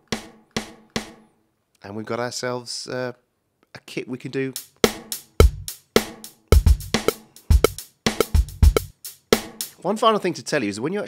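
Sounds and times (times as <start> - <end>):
snare drum hits with reverb: 0.0 - 1.2, 4.8 - 9.7.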